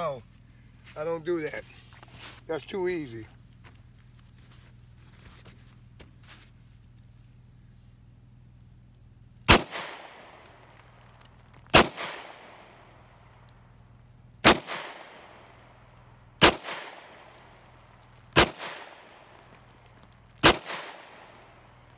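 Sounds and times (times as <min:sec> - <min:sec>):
gunshots with echo: 0:09.5 - 0:10.4, 0:11.8 - 0:12.7, 0:14.4 - 0:15.4, 0:16.4 - 0:17.3, 0:18.4 - 0:19.3, 0:20.4 - 0:21.4.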